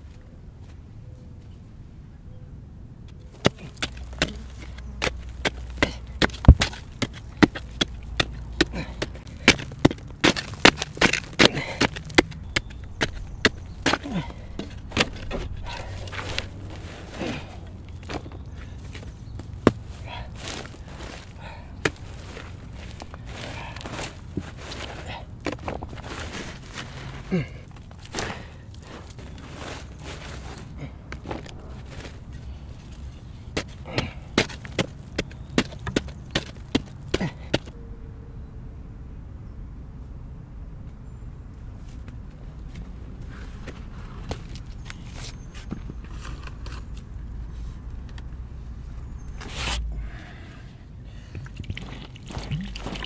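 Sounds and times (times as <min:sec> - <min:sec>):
digging stick striking stony dirt: 0:03.3 - 0:37.8, 0:49.3 - 0:49.9, 0:51.4 - 0:53.0
soil and pebbles crumbling: 0:03.3 - 0:37.8, 0:51.1 - 0:53.0.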